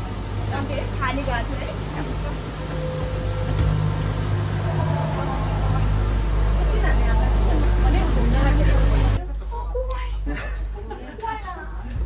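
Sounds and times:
gondola machinery rumble: 0.0s - 12.0s
passengers' voices: 0.0s - 12.0s.

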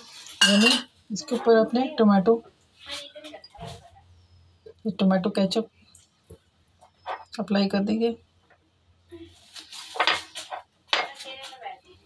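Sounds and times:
utensils clinking against dishes: 0.0s - 0.9s.

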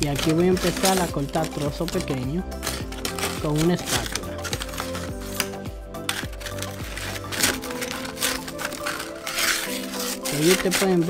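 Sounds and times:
background music: 0.0s - 11.0s
brittle candy cracking: 0.0s - 11.0s
spatula scraping metal tray: 0.0s - 11.0s.

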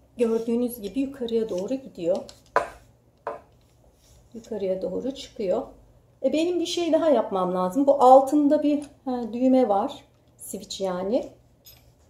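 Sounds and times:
tripod column knocks: 2.5s - 3.5s.

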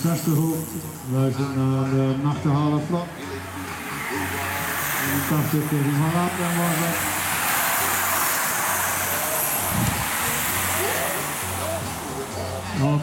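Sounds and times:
bicycles rushing past: 0.0s - 13.0s.

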